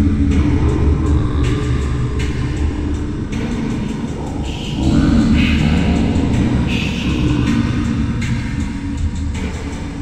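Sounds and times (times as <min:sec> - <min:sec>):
deep rumbling bass drone: 0:00.0 - 0:10.0.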